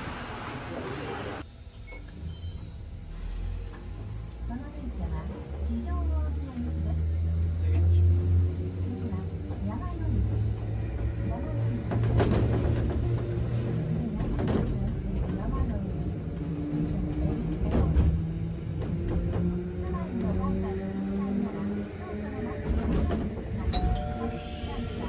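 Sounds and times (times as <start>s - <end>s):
tram motor hum: 0.0s - 25.0s
tram wheels clacking over rail joints: 9.3s - 21.8s, 22.4s - 25.0s.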